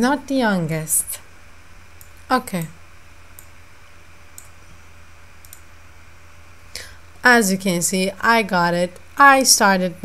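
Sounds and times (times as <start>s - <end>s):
low steady hum: 0.0s - 10.0s
computer mouse button clicking: 5.4s - 5.6s.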